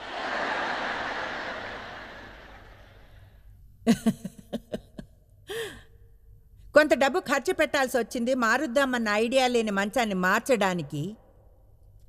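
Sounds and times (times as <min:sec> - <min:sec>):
woman laughing softly: 0:03.9 - 0:05.8
breathy sigh: 0:05.5 - 0:05.9.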